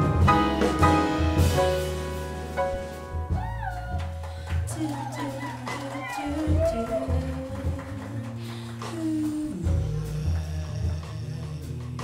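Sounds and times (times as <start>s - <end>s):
electric bass notes: 0.0s - 4.8s, 6.2s - 12.0s
grand piano: 0.0s - 12.0s
light drums: 0.0s - 12.0s.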